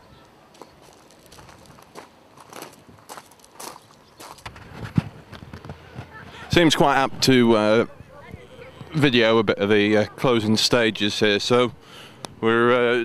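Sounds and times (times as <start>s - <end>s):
footsteps walking: 0.5s - 6.2s.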